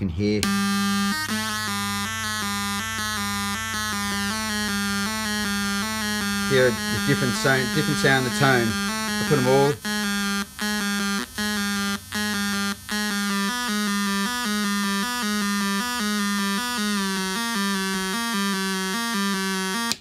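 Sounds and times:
buzzy synth tone sequence: 0.2 - 20.0.

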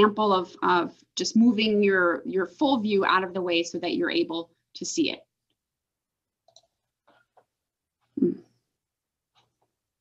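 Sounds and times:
woman speaking: 0.0 - 5.3.

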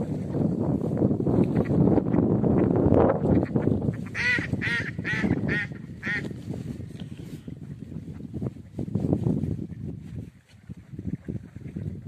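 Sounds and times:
wind noise: 0.0 - 12.0
waterfowl honking: 3.4 - 6.3.

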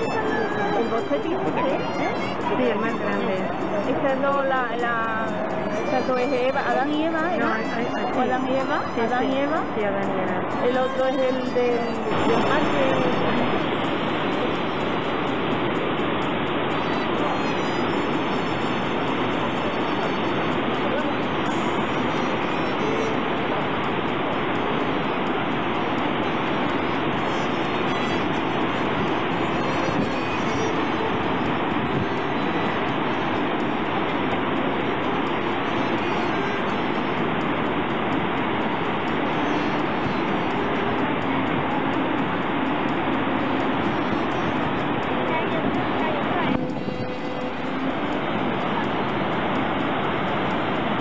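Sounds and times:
helicopter engine and rotor noise: 0.0 - 51.0.

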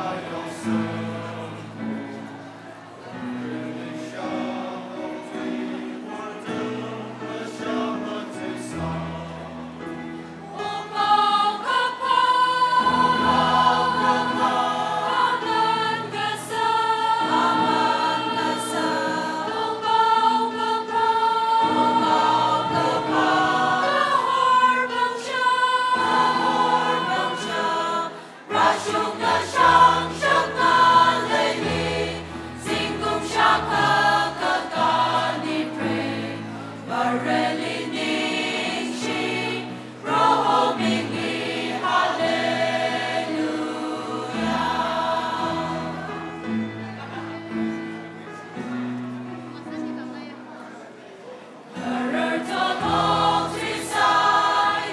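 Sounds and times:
choir singing a hymn: 0.0 - 50.0, 51.5 - 54.9.

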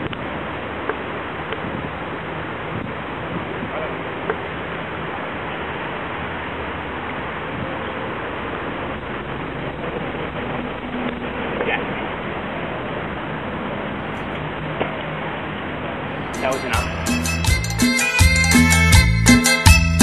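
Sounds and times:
faint voices: 3.2 - 5.3.

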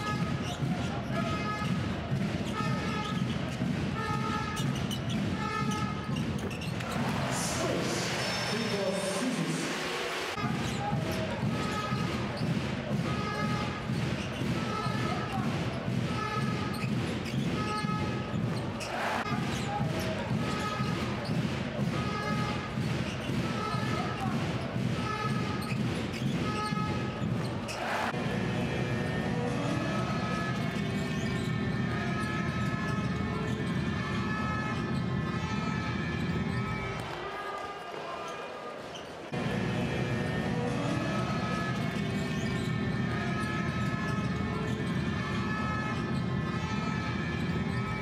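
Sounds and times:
arena crowd noise: 0.0 - 48.0.

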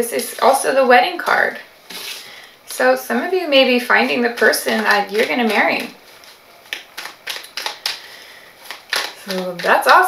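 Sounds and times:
cards snapping and tapping: 4.9 - 10.0.

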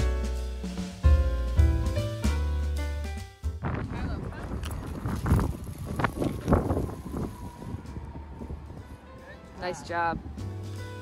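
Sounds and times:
wind buffeting microphone: 3.6 - 10.6.

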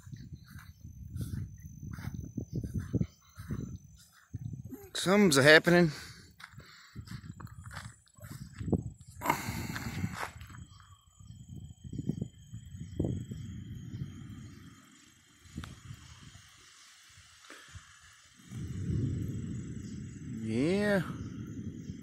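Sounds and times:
thunder rumbling: 18.4 - 22.0.

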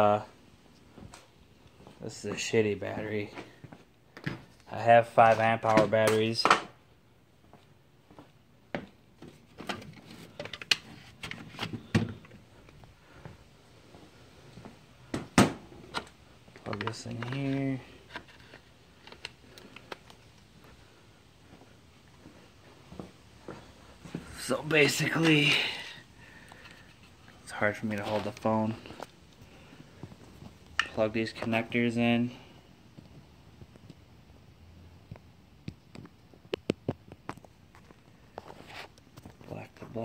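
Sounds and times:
plastic connectors clicking: 15.9 - 20.4.

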